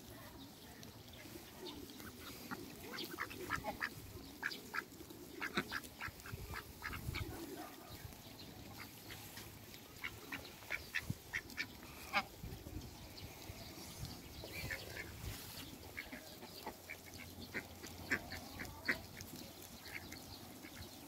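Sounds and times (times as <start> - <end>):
ducks quacking: 1.2 - 8.0, 8.6 - 13.0, 14.3 - 21.0.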